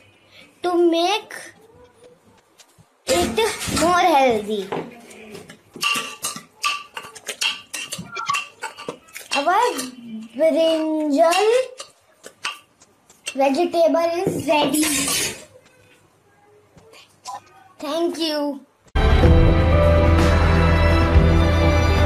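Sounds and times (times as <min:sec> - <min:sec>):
metal spoon scraping a pot: 0:05.8 - 0:13.4, 0:14.7 - 0:15.5.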